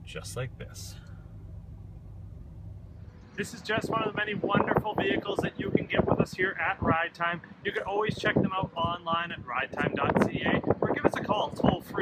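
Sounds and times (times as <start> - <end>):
low hum inside car cabin: 0.0 - 6.5.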